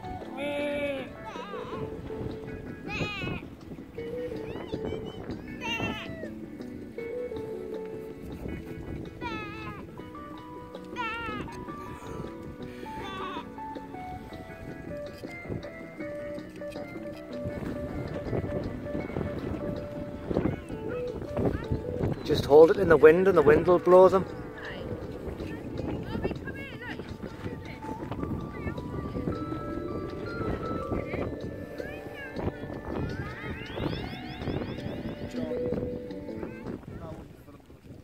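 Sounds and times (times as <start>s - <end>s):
background music: 0.0s - 37.2s.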